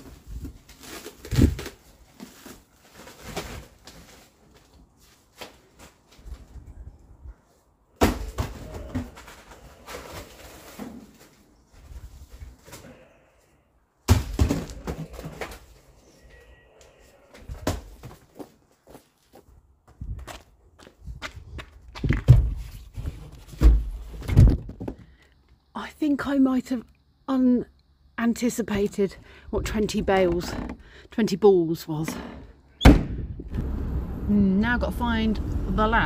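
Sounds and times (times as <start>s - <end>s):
rustling handling noise: 0.0s - 7.8s.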